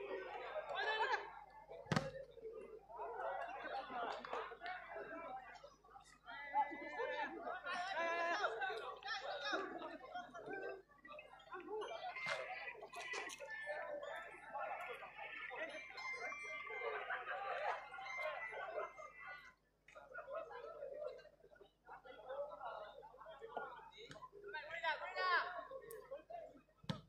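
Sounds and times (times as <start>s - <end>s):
voices talking: 0.0s - 26.8s.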